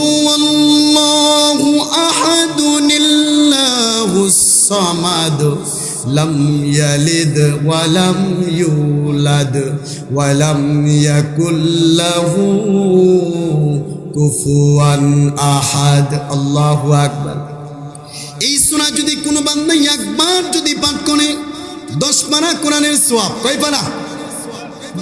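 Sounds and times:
man chanting through microphone: 0:00.0 - 0:25.0.

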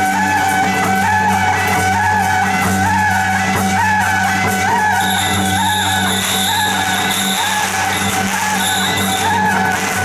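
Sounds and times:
reed horn melody over loudspeakers: 0:00.0 - 0:10.0
firecrackers crackling: 0:05.0 - 0:10.0.

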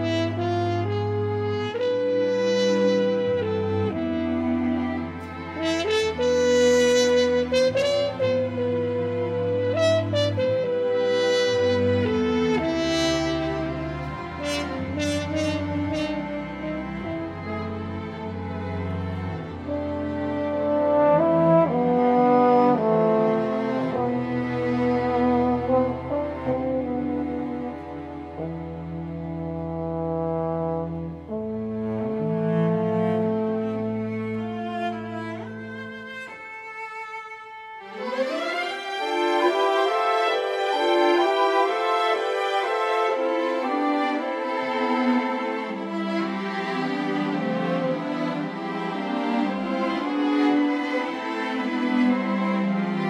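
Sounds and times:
chamber ensemble strings and woodwinds: 0:00.0 - 0:53.0
french horn melody: 0:00.0 - 0:53.0.

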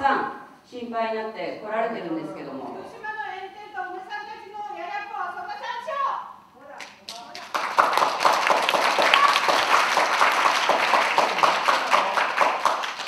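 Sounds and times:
audience applauding: 0:06.8 - 0:13.0.

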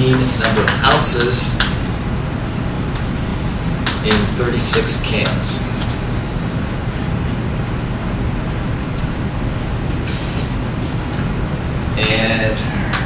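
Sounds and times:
low rumble of room noise: 0:00.0 - 0:13.0.

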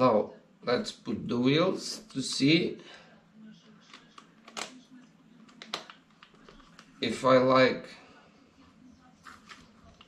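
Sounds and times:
plastic parts clicking: 0:03.9 - 0:04.8.

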